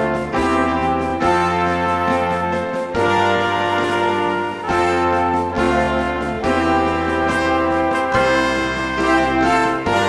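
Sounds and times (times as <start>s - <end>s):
brass band chords: 0.0s - 10.0s.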